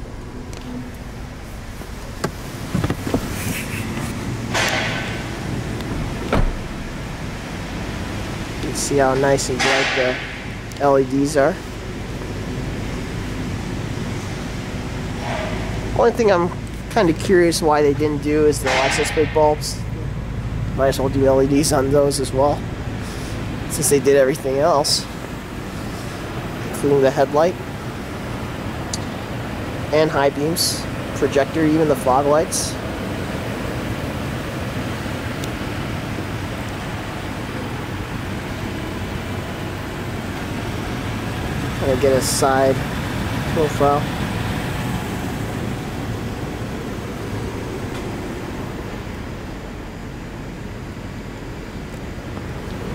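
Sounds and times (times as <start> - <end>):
car engine idling: 0.0 - 52.9.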